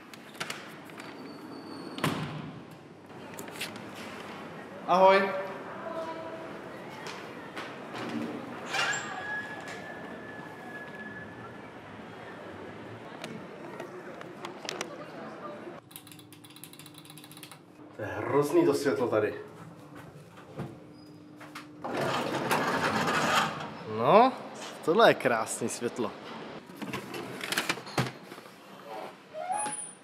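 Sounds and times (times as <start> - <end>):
street noise: 2.7 - 15.9.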